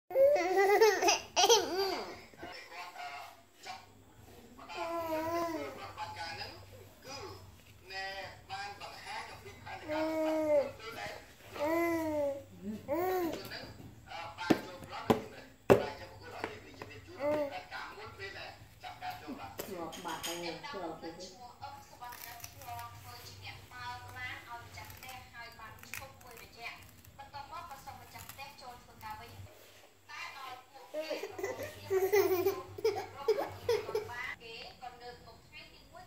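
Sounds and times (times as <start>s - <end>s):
toddler laughing: 0.1s - 2.2s, 31.2s - 34.2s
person speaking: 30.8s - 34.4s.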